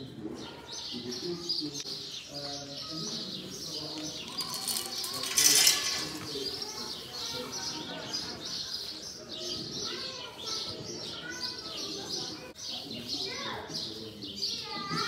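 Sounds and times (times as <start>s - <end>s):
small birds chirping: 0.0s - 15.0s
pellets rattling into metal bowl: 4.2s - 6.7s.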